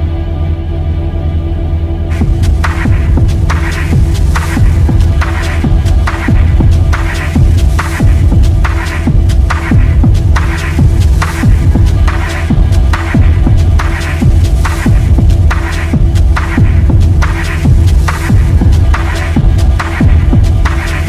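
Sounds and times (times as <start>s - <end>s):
bass drone: 0.0s - 21.0s
techno kick drum: 2.1s - 21.0s.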